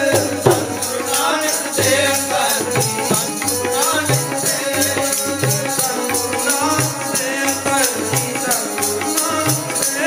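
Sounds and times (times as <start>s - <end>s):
harmonium melody: 0.0s - 10.0s
tabla rhythm: 0.0s - 10.0s.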